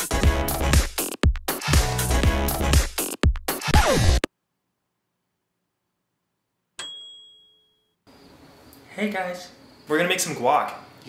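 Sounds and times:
bright metallic ding: 6.8 - 7.9.

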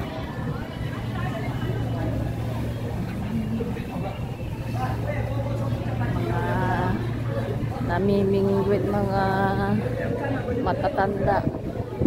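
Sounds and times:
faint voices: 0.0 - 12.0
low engine-like drone: 0.0 - 12.0.

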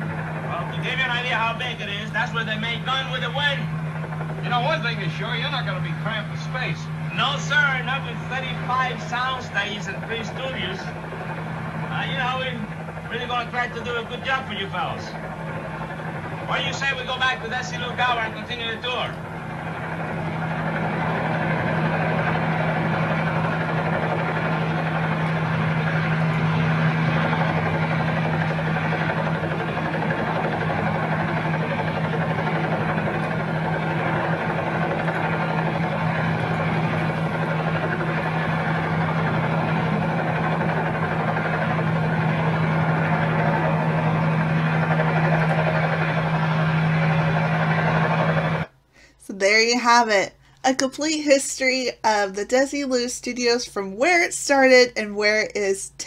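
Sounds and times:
aircraft engine drone in cabin: 0.0 - 49.3.

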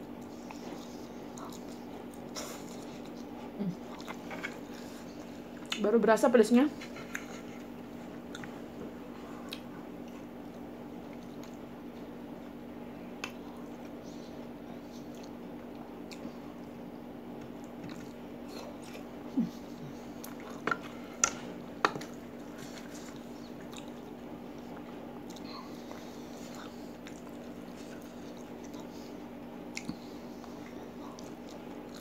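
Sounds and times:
person chewing food: 0.0 - 5.8, 6.8 - 32.0.

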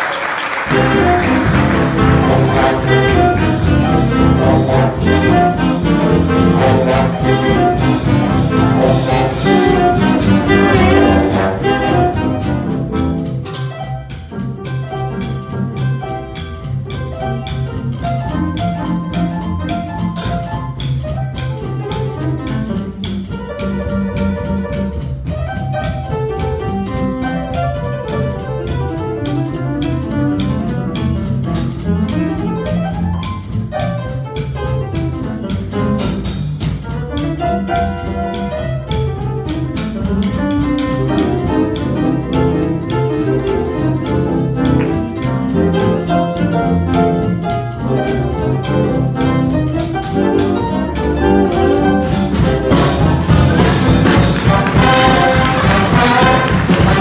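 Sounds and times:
jazz big band playing swing: 0.0 - 57.0
cymbal keeping a beat: 0.7 - 57.0.

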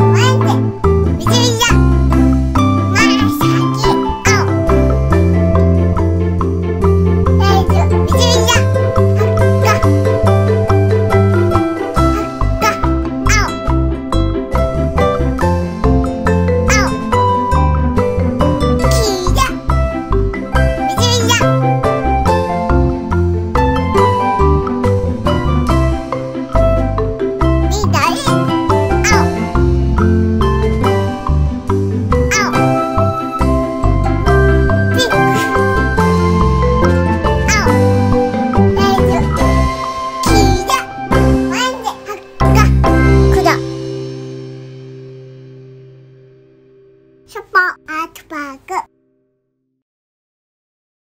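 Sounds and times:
cheerful children's music: 0.0 - 45.9, 47.3 - 48.9.

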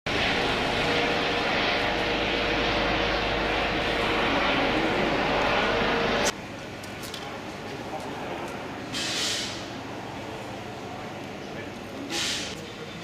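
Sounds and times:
helicopter engine and rotor noise: 0.1 - 9.0.

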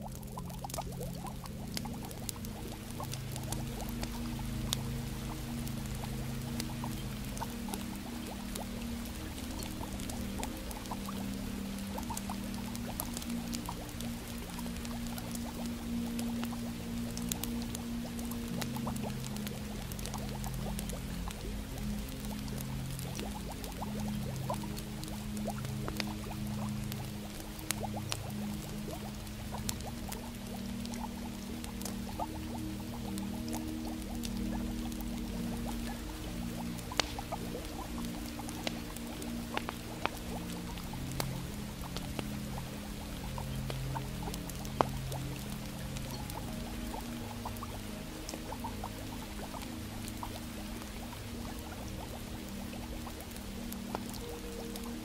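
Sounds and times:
log fire crackling: 0.0 - 55.0
slow ambient music: 0.0 - 55.0
fire popping: 0.1 - 55.0.

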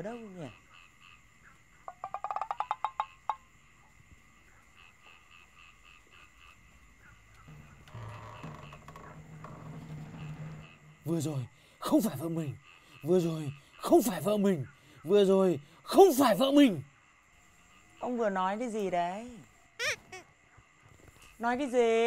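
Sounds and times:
faint insects chirping: 0.0 - 22.0.

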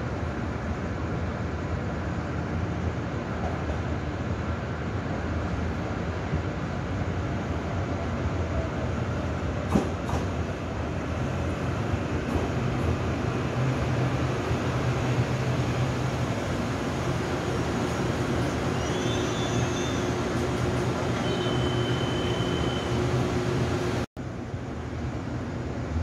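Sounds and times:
electric train running noise: 11.2 - 24.1
high-pitched brake squeals: 18.4 - 20.2, 21.2 - 23.1.

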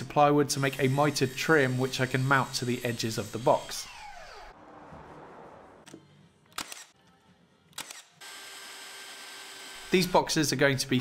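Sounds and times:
saw blade spinning down: 0.8 - 5.8
sharp clicks: 5.9 - 7.0, 7.7 - 8.2.

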